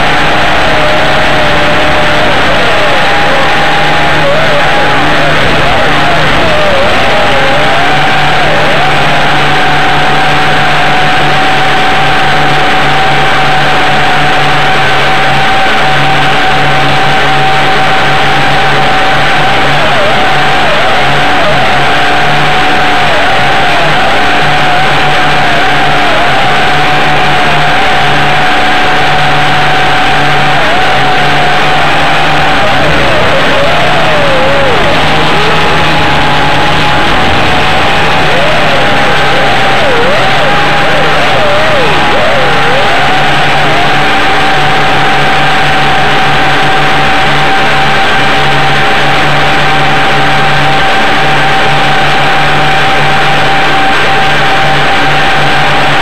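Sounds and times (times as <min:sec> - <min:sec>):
quadcopter propellers whining: 0:00.0 - 0:56.0.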